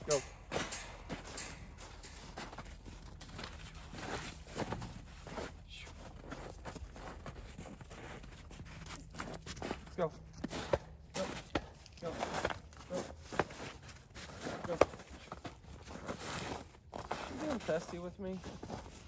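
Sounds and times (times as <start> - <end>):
footsteps on snow: 0.0 - 19.0.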